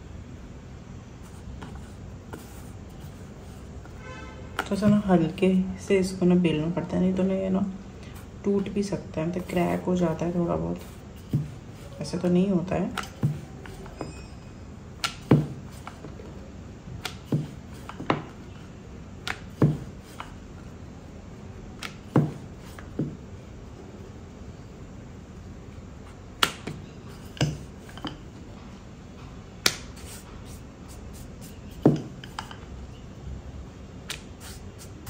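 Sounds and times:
rolling pin knocking on board: 15.0 - 15.7, 19.2 - 20.3, 21.8 - 23.2, 31.8 - 32.4.

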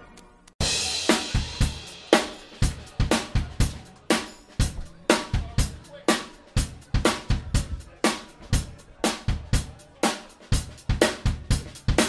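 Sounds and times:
drum kit playing dance beat: 0.6 - 12.0.

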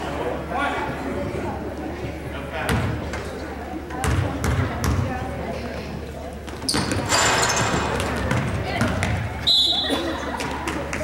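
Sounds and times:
crowd voices: 0.0 - 11.0
basketball bouncing on hardwood floor: 7.7 - 9.3
whistle blast: 9.4 - 10.0.

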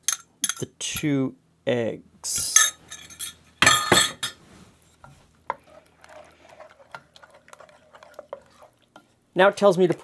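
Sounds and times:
spoon stirring thick sauce: 4.8 - 10.0.

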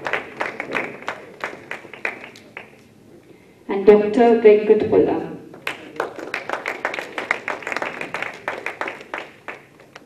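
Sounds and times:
audience clapping: 0.0 - 2.9, 5.5 - 10.0.

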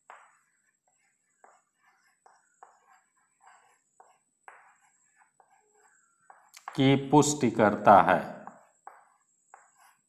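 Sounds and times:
chalk scratching on blackboard: 0.0 - 7.7, 8.4 - 10.0.

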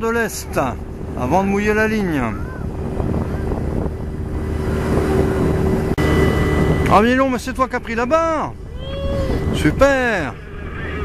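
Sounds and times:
boat engine running: 0.0 - 11.0
water noise: 0.0 - 11.0
wind: 0.0 - 11.0.

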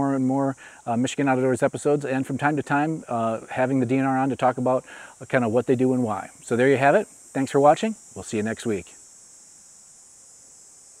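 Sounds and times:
insects droning: 0.0 - 11.0.

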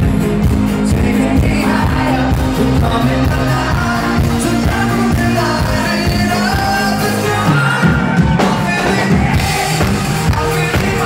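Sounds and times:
live pop band music: 0.0 - 11.0.

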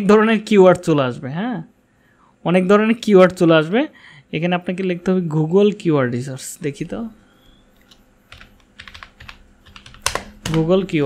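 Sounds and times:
typing on keyboard: 7.8 - 11.0.

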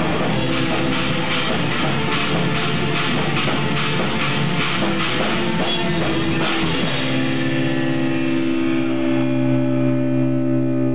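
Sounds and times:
bass guitar note: 0.0 - 10.9
distorted electric guitars chord: 0.0 - 10.9.

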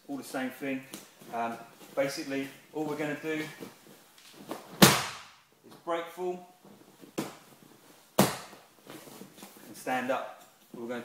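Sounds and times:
slaps on vinyl mat: 4.5 - 5.4, 8.2 - 8.6.

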